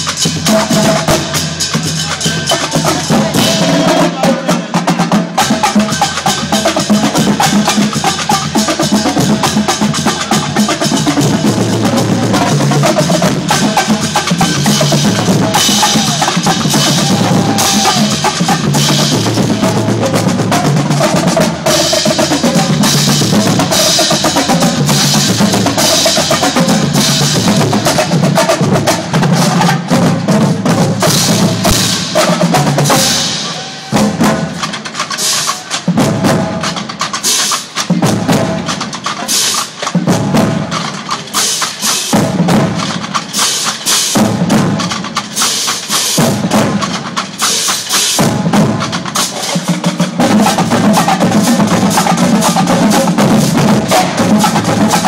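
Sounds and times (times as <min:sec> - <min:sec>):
marching drumline playing: 0:00.0 - 0:55.0.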